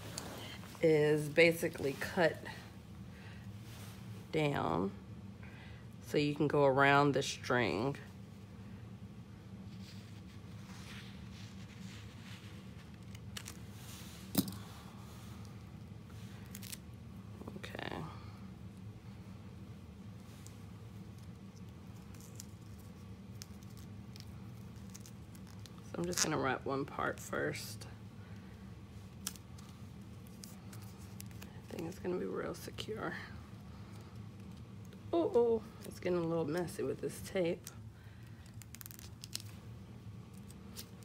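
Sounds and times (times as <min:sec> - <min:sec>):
tape being handled: 0:09.7 - 0:14.6, 0:20.2 - 0:26.5, 0:29.0 - 0:32.6, 0:37.4 - 0:41.0.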